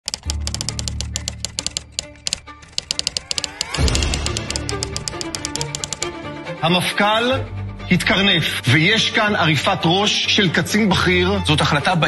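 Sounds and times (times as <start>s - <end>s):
rapid typewriter keystrokes: 0.0s - 6.1s.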